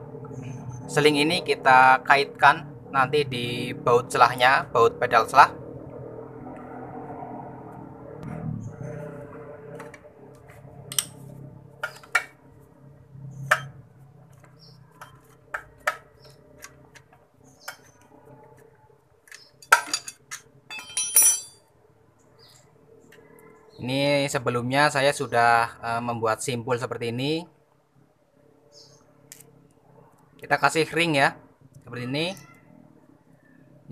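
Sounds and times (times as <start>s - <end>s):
metal wrench clinking on bolt: 19.6s - 21.6s.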